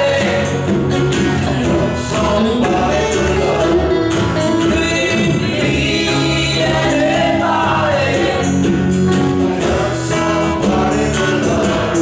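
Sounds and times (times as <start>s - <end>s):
guitars: 0.0s - 12.0s
voices singing together: 0.0s - 12.0s.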